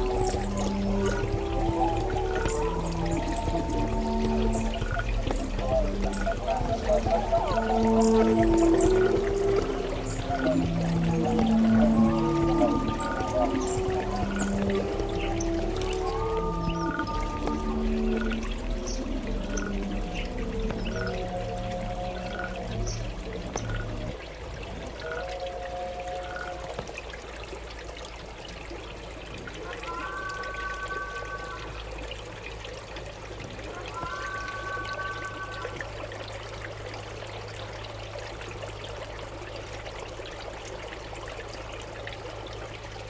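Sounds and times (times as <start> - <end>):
held two-note chords: 0.0 - 24.1
low electronic drone: 0.0 - 24.2
trickling pouring water: 0.0 - 43.0.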